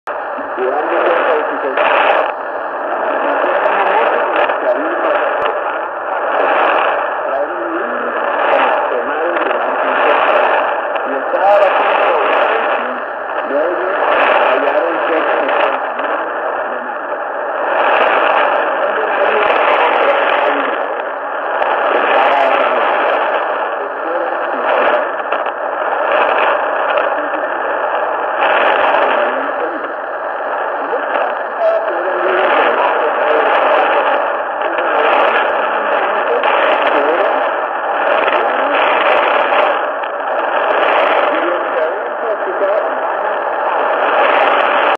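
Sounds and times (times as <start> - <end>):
radio static and hiss: 0.1 - 44.9
radio voice: 0.1 - 44.9.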